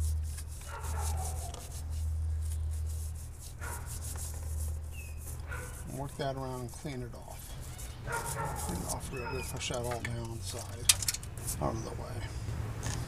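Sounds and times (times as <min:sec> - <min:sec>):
scrubbing metal terminal: 0:00.0 - 0:11.9.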